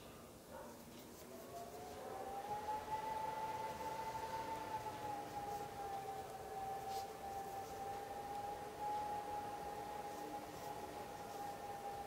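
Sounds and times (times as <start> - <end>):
steady wavering whine: 1.1 - 12.0.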